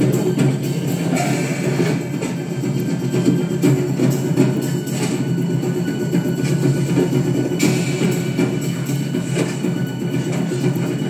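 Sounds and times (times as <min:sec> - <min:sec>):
tense film score with drums: 0:00.0 - 0:11.0.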